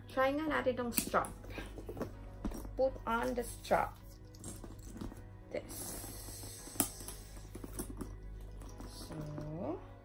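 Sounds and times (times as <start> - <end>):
leather strap handling: 1.0 - 5.3, 6.0 - 9.6.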